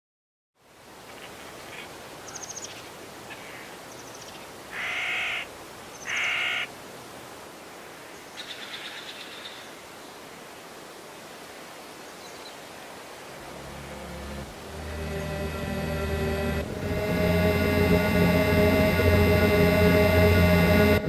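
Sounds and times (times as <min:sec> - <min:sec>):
steady background hiss: 0:00.6 - 0:21.0
harsh bird calls: 0:02.3 - 0:06.7.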